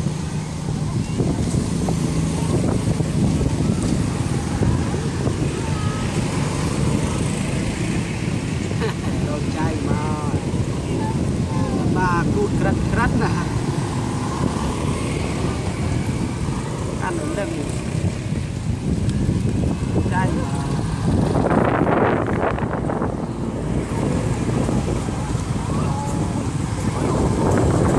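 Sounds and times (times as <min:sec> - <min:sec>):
road traffic rumbling: 0:00.0 - 0:27.9.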